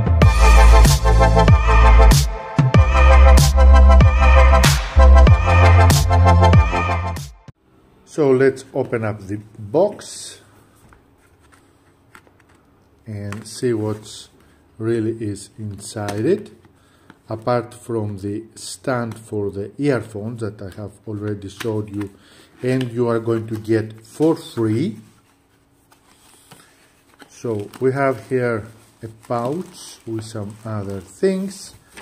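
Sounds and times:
fabric pouch rustling: 22.6s - 32.0s.

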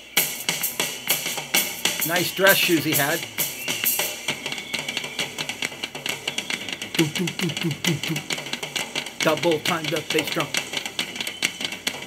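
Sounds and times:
drum kit solo: 0.0s - 12.0s.

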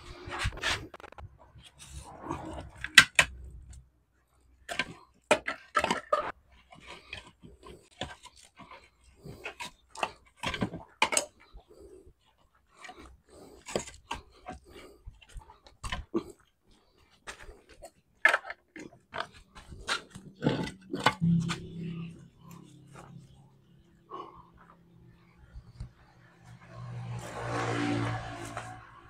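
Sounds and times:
low drawn-out pitched sound: 21.2s - 27.3s.

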